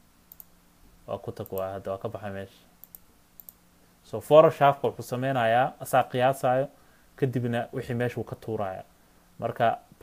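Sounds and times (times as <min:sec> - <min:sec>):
computer mouse clicking: 0:00.3 - 0:00.5, 0:02.8 - 0:03.6
person speaking: 0:01.0 - 0:02.7, 0:04.0 - 0:10.0.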